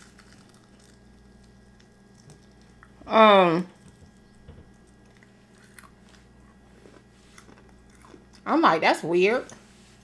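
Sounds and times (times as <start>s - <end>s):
soft chewing and mouth clicks: 0.0s - 3.0s, 3.7s - 8.5s
low steady hum: 0.0s - 10.0s.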